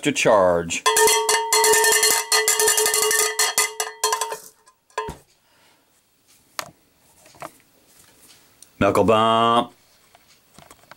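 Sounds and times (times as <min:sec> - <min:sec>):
cowbell rung rapidly: 0:00.8 - 0:04.4.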